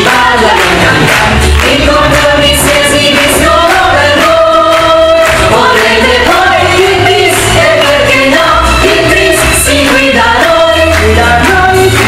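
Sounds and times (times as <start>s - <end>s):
group singing: 0.0s - 12.0s
musical accompaniment with bass beat: 0.0s - 12.0s.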